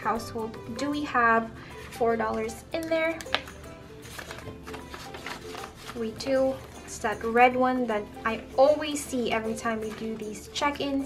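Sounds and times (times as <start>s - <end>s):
soft background music: 0.0s - 11.0s
paper bills rustling: 3.2s - 7.0s, 9.5s - 10.5s.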